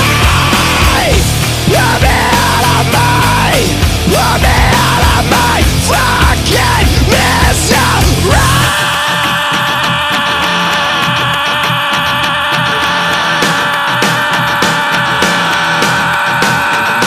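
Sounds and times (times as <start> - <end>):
rock backing track with drums: 0.0 - 17.0.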